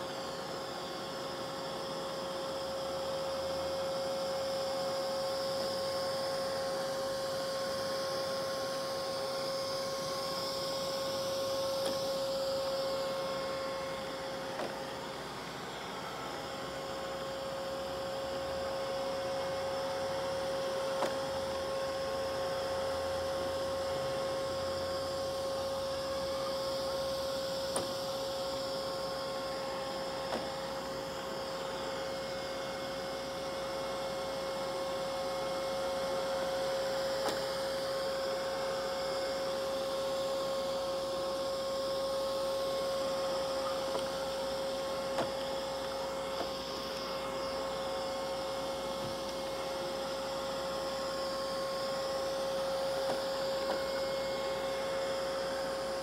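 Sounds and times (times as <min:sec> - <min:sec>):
robot vacuum running: 0:00.0 - 0:56.0.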